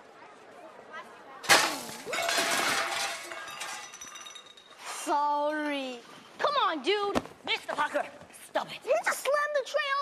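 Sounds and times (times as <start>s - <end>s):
tray of dishes crashing: 1.4s - 4.7s.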